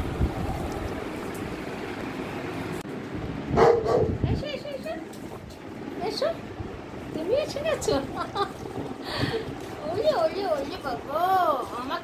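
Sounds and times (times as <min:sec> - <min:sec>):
dog barking: 0:03.6 - 0:04.2.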